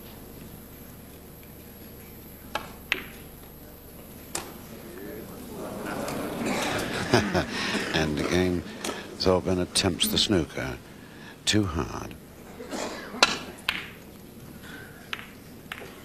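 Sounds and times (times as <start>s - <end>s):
snooker balls clicking: 2.5s - 4.7s, 13.2s - 16.0s
murmur of audience voices: 4.6s - 10.7s.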